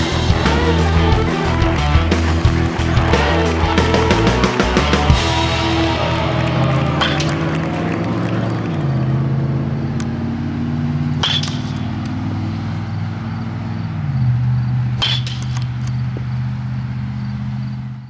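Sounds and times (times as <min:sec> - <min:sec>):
rock music: 0:00.0 - 0:09.4.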